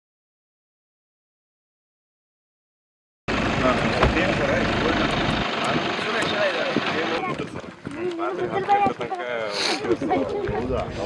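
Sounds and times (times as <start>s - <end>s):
low rumble: 3.3s - 7.9s
people talking at once: 3.6s - 11.0s.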